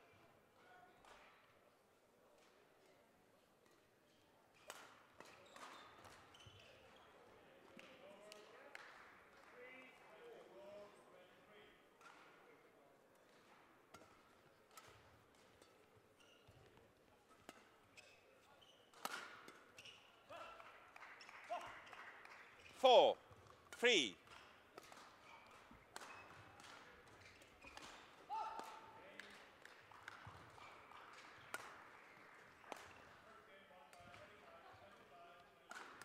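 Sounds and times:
murmur of voices: 0:22.8 - 0:23.2, 0:23.8 - 0:24.2
person calling out loudly: 0:22.8 - 0:23.2, 0:23.8 - 0:24.1.

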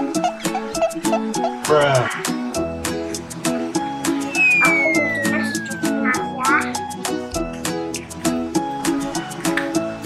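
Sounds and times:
upbeat plucked string music: 0:00.0 - 0:10.0
whistle-like tone sliding down: 0:04.2 - 0:06.1
short high voice-like sounds: 0:04.4 - 0:06.8.

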